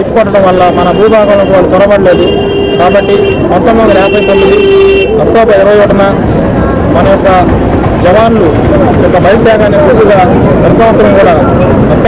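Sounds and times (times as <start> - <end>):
man speaking: 0.0 - 6.3, 6.9 - 12.0
vehicle horn honking: 0.6 - 5.2.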